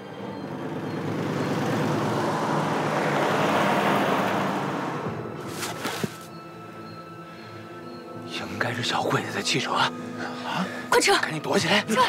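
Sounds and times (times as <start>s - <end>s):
car driving by on dirt road: 0.2s - 6.1s.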